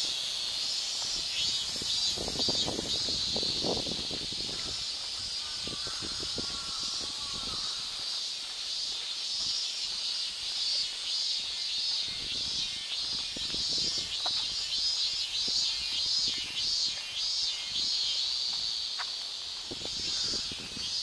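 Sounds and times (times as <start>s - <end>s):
cicadas buzzing: 0.0s - 21.0s.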